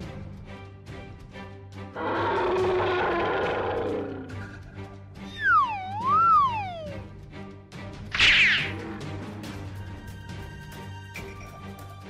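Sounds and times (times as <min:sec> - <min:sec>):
background music: 0:00.0 - 0:12.0
roar sound effect: 0:02.0 - 0:04.4.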